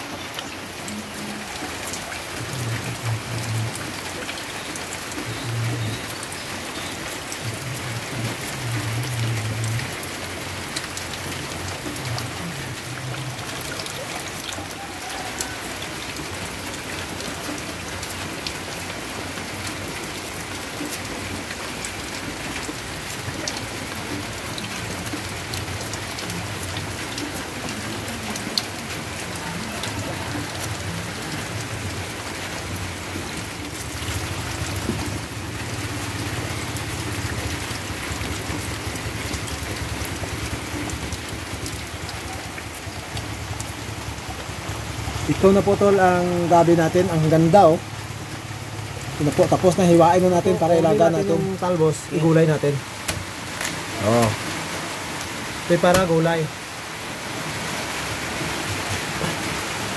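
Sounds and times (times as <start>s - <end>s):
steady rain with drips: 0.0s - 59.9s.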